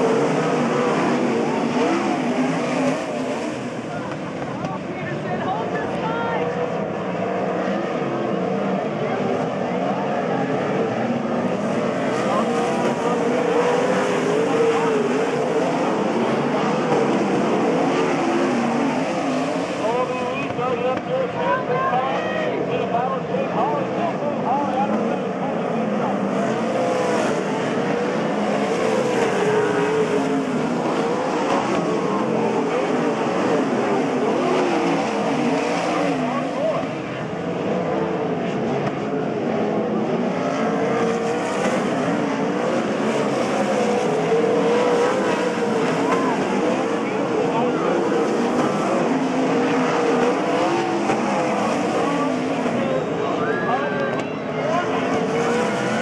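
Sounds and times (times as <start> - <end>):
racing car engines: 0.0 - 56.0.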